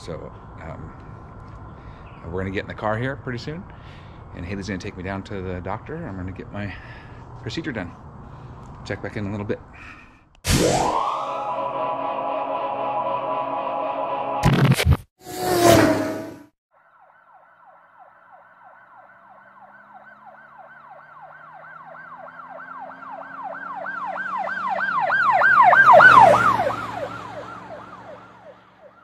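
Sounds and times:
short loud noise: 10.4 - 11.6
emergency siren yelping: 10.6 - 14.4, 16.8 - 29.0.

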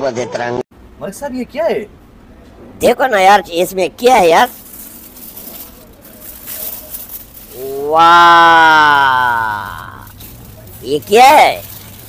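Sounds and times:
person calling out in amazement: 7.5 - 10.1.

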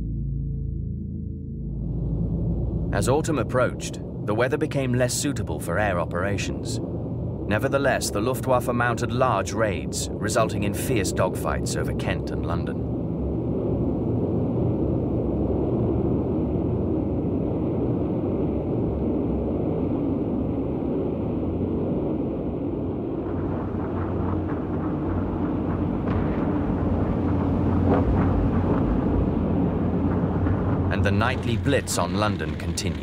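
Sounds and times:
piston aircraft engines droning: 1.5 - 33.0.

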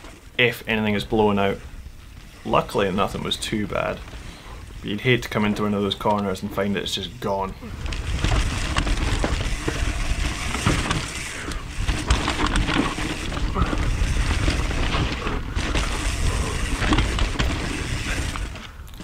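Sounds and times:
bike tyres on dirt: 0.0 - 19.0
wind on microphone: 7.6 - 18.6
bike chain and frame rattling: 7.6 - 19.0.

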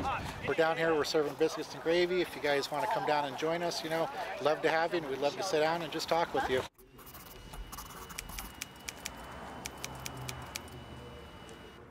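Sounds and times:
faint high whine: 6.8 - 11.9.

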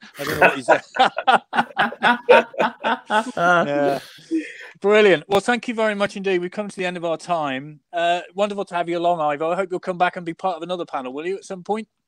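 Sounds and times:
people chuckling: 0.0 - 4.7.

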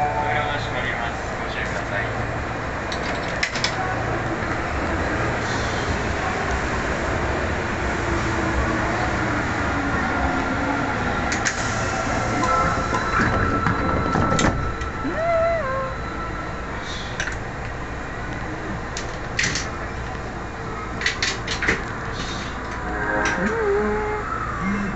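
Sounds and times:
subway train humming: 0.0 - 24.9
steady tone: 22.8 - 24.5.

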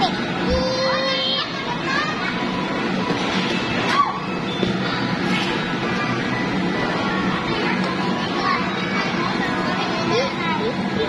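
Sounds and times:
children's voices and cries: 0.0 - 2.8.

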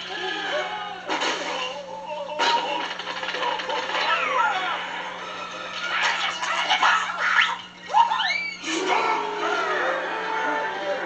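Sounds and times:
film music and effects: 0.0 - 11.0
shrill swooping cry: 6.0 - 9.9.

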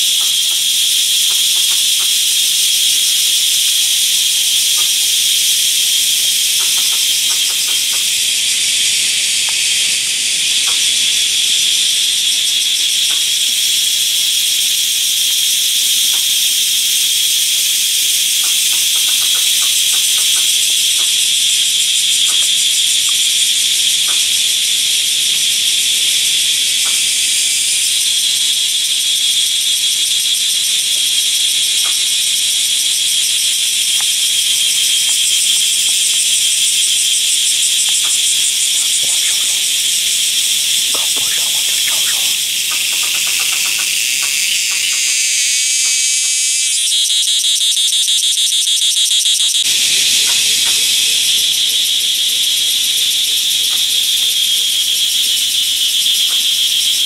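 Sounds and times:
buzzing insect chorus: 0.0 - 57.0
fast-pulsing insect call: 0.0 - 57.0.

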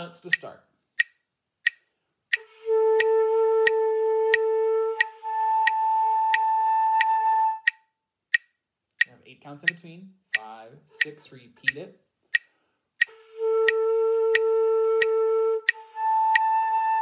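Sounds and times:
metronome ticking: 0.0 - 17.0
flute slurring held notes: 2.4 - 7.7, 13.0 - 17.0.

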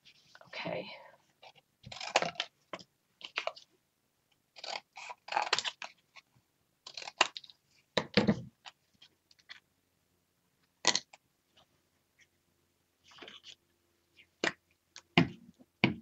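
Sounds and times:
chipboard cutting and rustling: 1.8 - 2.5, 4.6 - 5.9.

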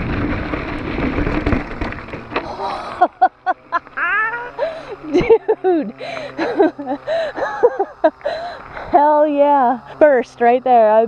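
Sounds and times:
woman laughing: 2.5 - 8.7.

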